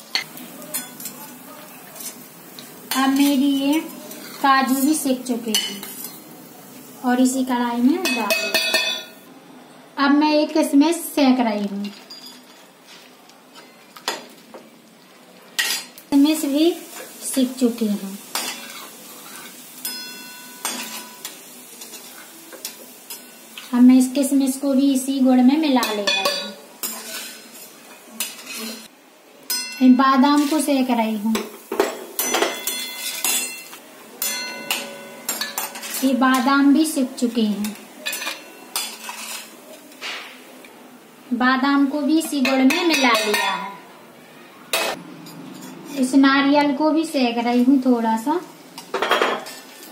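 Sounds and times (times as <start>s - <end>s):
faint room hiss: 0.0s - 49.9s
steel spoon clinking on pan: 8.0s - 9.2s, 19.8s - 23.6s, 25.8s - 27.4s, 29.5s - 30.5s, 31.8s - 36.5s, 37.6s - 39.5s
metal spoon scraping a steel pan: 25.8s - 27.6s, 37.7s - 39.6s.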